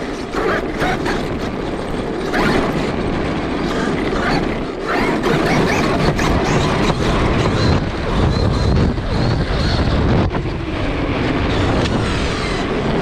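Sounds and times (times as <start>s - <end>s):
chassis and tyres rattling on cobblestones: 0.0s - 13.0s
electric motor and gears whining: 0.0s - 13.0s.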